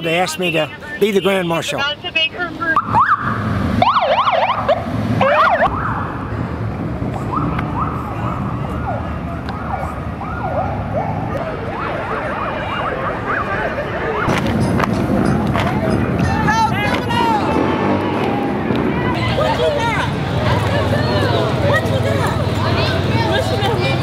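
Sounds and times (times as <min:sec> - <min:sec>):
steady background noise: 0:00.0 - 0:24.0
police car siren: 0:02.7 - 0:14.4.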